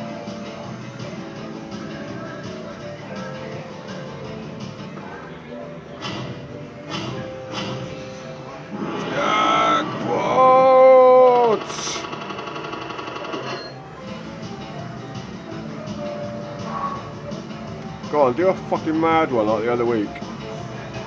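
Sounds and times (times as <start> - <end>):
arcade background music: 0.0 - 21.0
fruit machine jingle: 11.6 - 13.8.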